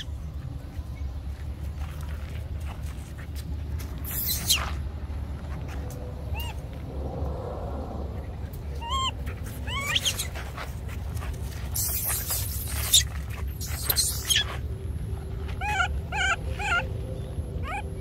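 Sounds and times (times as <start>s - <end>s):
high-pitched animal squeals: 4.0s - 4.8s, 6.3s - 6.6s, 8.8s - 10.5s, 11.7s - 14.6s, 15.5s - 17.0s, 17.6s - 18.0s.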